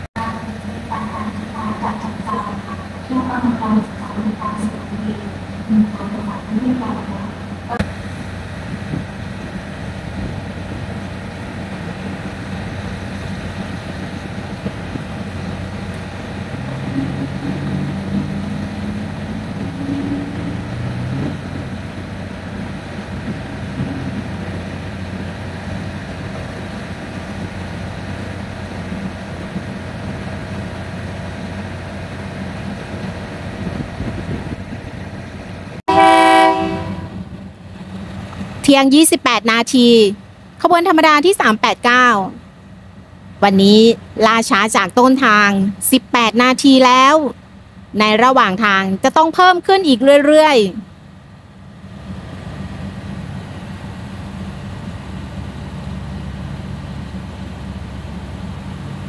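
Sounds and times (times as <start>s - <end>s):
diesel railcar idling: 0.0s - 59.0s
train horn: 35.9s - 37.3s.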